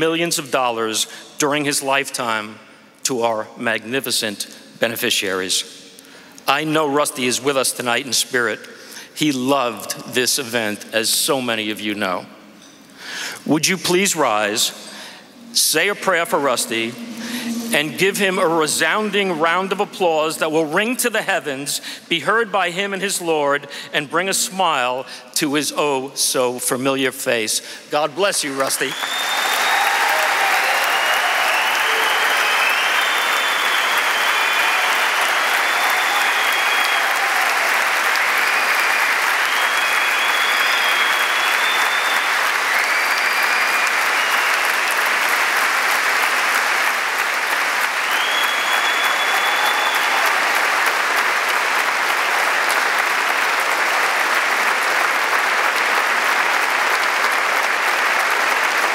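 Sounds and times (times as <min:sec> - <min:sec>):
audience applauding: 0:28.4 - 0:58.9
high calls from audience: 0:29.0 - 0:38.2.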